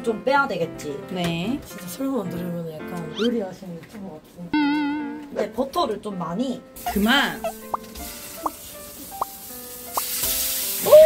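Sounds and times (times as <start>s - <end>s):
fish sizzling in a frying pan: 6.8s - 11.0s.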